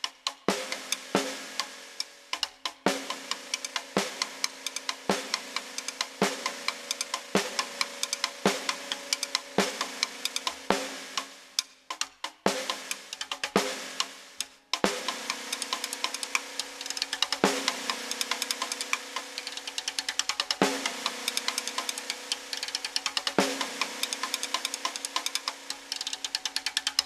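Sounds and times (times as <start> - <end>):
fast snare drum strokes: 0.0 - 27.0.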